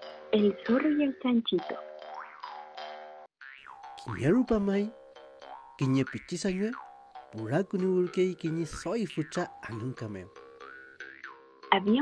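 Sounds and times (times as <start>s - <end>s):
cartoon background music: 3.4s - 11.0s.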